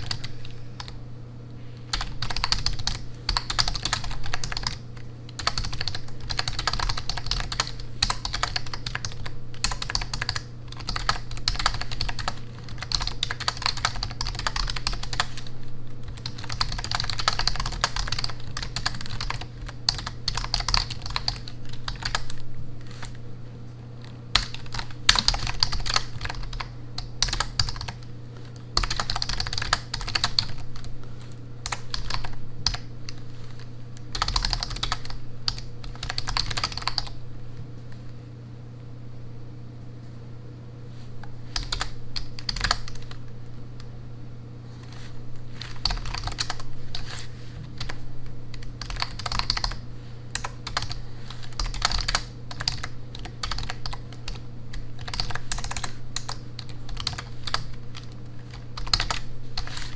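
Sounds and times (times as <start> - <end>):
fast typing on computer keyboard: 0.0 - 1.0, 1.9 - 23.2, 24.3 - 28.1, 28.8 - 30.9, 31.6 - 33.2, 34.0 - 37.2, 41.5 - 43.2, 45.6 - 59.9.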